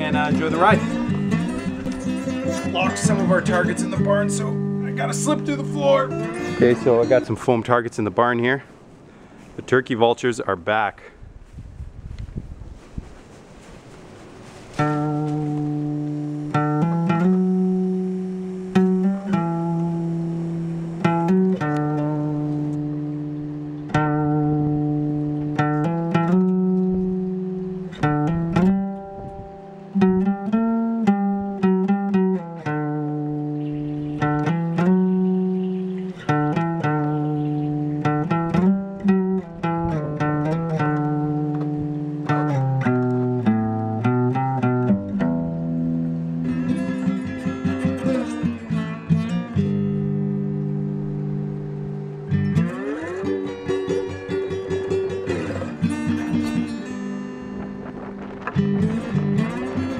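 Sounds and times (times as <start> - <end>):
guitar picking slow notes: 0.0 - 7.5, 14.4 - 59.9.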